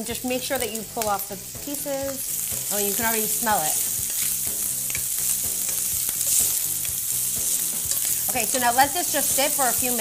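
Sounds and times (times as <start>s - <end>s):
meat sizzling in a skillet: 0.0s - 10.0s.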